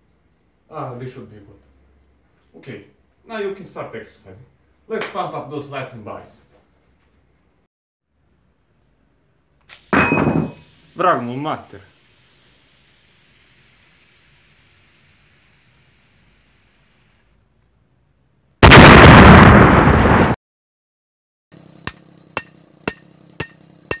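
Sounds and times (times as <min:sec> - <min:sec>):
faint hiss: 0:09.4 - 0:17.4
loud blast of noise: 0:18.6 - 0:20.4
sharp ringing pings: 0:21.5 - 0:24.0.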